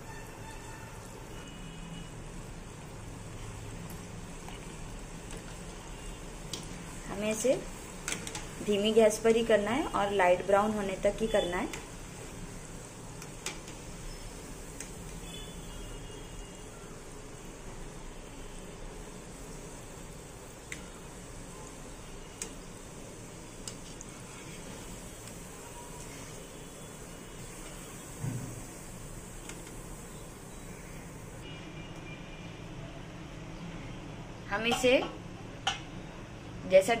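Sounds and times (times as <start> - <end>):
dough deep-frying in oil: 0.0 - 37.0.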